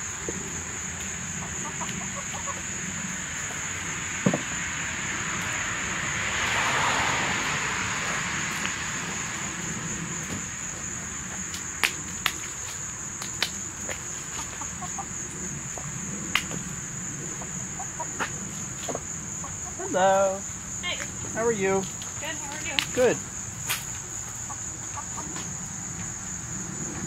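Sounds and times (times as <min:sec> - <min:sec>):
crickets trilling: 0:00.0 - 0:27.0
hens clucking: 0:01.0 - 0:03.9, 0:14.2 - 0:16.6, 0:17.2 - 0:20.4, 0:24.0 - 0:25.6
beak taps on asphalt: 0:22.5 - 0:23.0.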